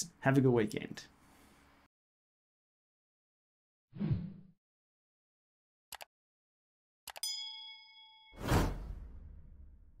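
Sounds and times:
bell-like ding: 0:07.2 - 0:08.4.

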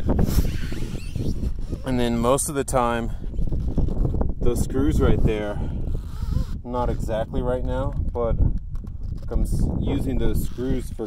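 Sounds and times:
wind rumbling on microphone: 0:00.0 - 0:11.0
man talking: 0:01.8 - 0:03.2, 0:04.4 - 0:05.6, 0:06.6 - 0:08.4, 0:09.3 - 0:11.0.

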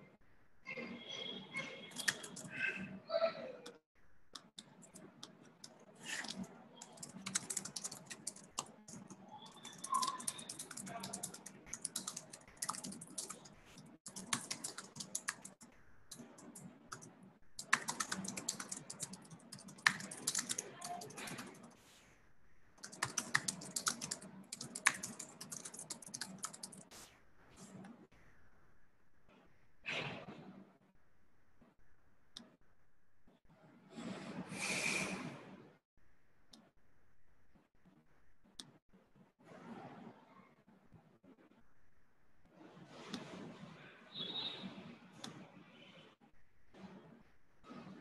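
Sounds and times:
keyboard typing: 0:01.9 - 0:02.8, 0:03.6 - 0:21.8, 0:22.8 - 0:26.9.

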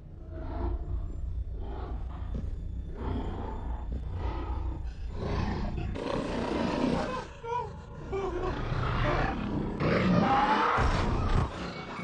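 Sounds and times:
zombie snarling and roaring: 0:05.1 - 0:07.4, 0:08.1 - 0:11.6.

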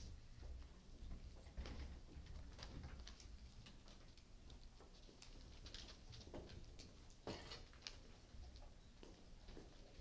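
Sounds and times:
soft clicks and rustles: 0:00.0 - 0:10.0.

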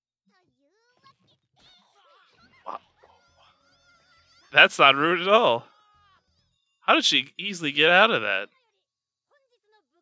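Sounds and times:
high-pitched cartoon voices: 0:04.6 - 0:05.6.

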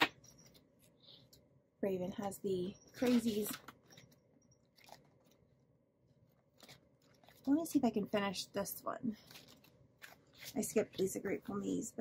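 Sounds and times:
paper and plastic handling: 0:03.0 - 0:05.4, 0:06.3 - 0:08.1, 0:09.1 - 0:11.5.

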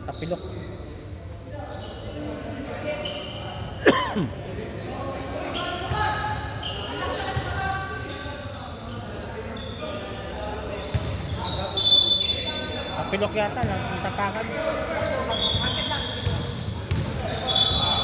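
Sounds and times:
voices: 0:01.6 - 0:18.0.

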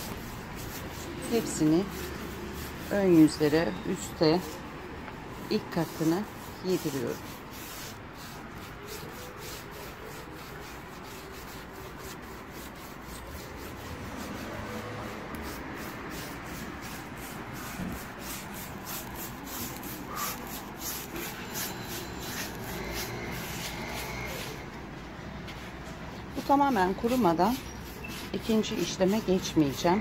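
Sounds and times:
paintbrush rubbing on wood: 0:00.0 - 0:24.7, 0:25.5 - 0:30.0.

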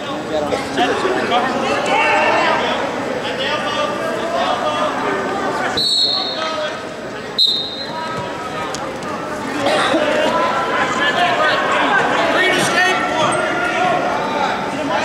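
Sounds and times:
voices echoing in a gym: 0:00.0 - 0:15.0
referee's whistle blasts: 0:05.8 - 0:06.5, 0:07.4 - 0:08.0.

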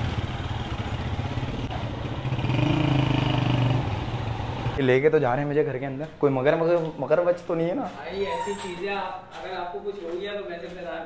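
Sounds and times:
motorcycle engine revving: 0:00.0 - 0:04.8.

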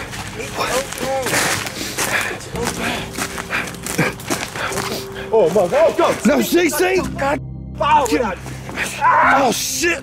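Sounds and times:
hurried footsteps on rough ground: 0:00.0 - 0:07.1, 0:08.0 - 0:09.1.

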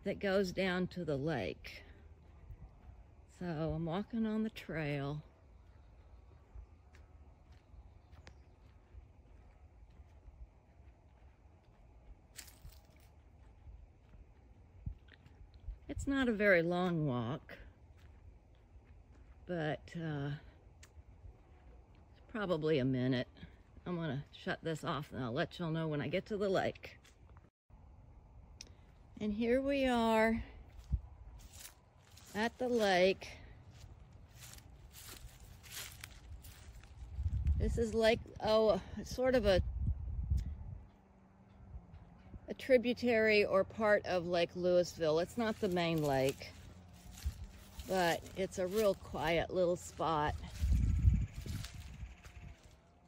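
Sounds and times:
footsteps crunching on dry leaves: 0:05.5 - 0:15.5, 0:17.8 - 0:19.4, 0:30.6 - 0:38.0, 0:44.9 - 0:52.8
low rumble: 0:33.4 - 0:42.5, 0:46.4 - 0:53.0.

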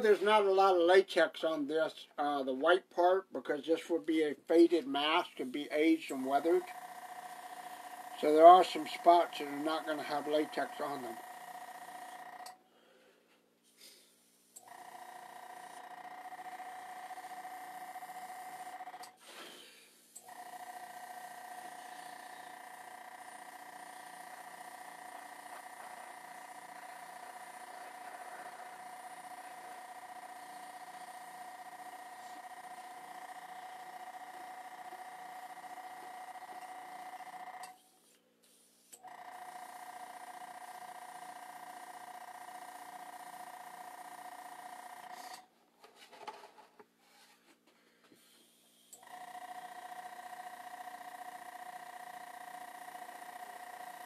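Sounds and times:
airbrush compressor humming: 0:05.0 - 0:12.6, 0:14.3 - 0:37.9, 0:38.8 - 0:45.4, 0:48.2 - 0:54.0.

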